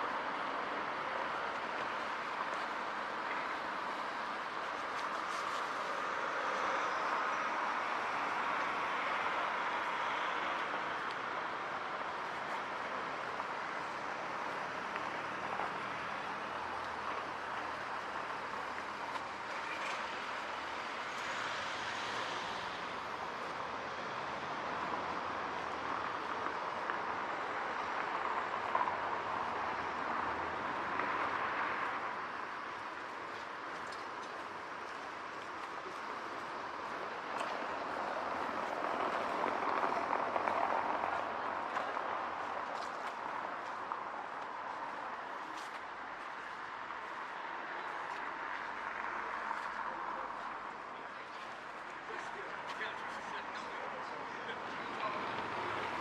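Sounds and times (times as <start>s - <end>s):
traffic noise: 0.0s - 56.0s.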